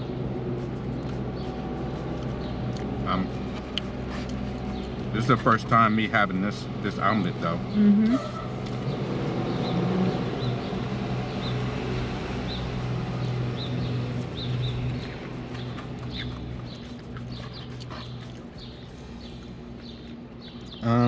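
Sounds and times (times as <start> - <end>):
steady low hum: 0.0 - 21.0
chewing: 0.7 - 5.0, 12.6 - 20.8.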